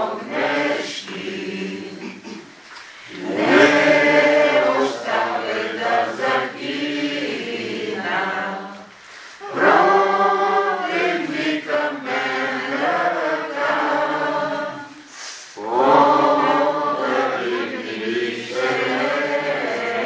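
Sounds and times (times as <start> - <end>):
group singing a hymn: 0.0 - 20.0.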